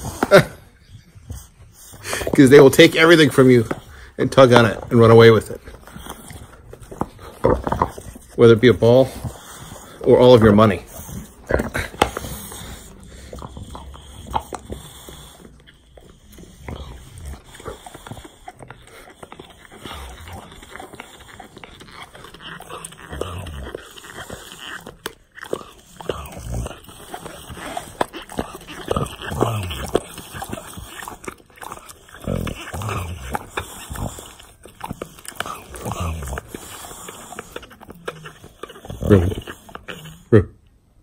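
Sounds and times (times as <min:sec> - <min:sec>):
dog breathing and grunting: 0:00.0 - 0:41.0
jaws clicking on toy: 0:01.2 - 0:40.3.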